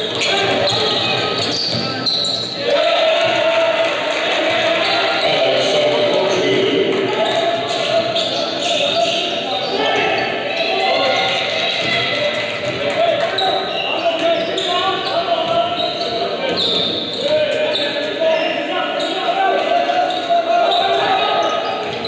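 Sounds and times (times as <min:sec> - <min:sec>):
sneakers squeaking: 0:00.0 - 0:03.4, 0:04.4 - 0:22.0
people calling out: 0:00.0 - 0:22.0.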